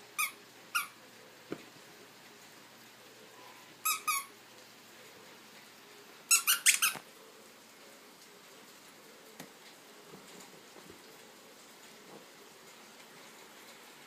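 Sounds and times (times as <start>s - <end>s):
squeaky dog toy squeaking: 0.2s - 1.0s, 3.8s - 4.3s, 6.3s - 7.0s.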